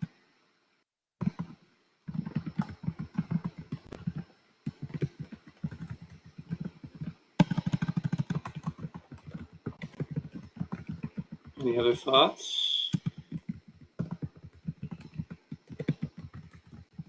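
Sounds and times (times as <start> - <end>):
typing on computer keyboard: 1.2 - 11.8, 12.9 - 17.0.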